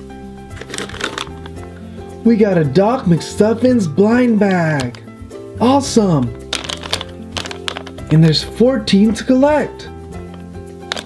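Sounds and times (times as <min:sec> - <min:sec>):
background music: 0:00.0 - 0:11.0
foil packet crinkling: 0:00.5 - 0:01.6, 0:06.5 - 0:08.2.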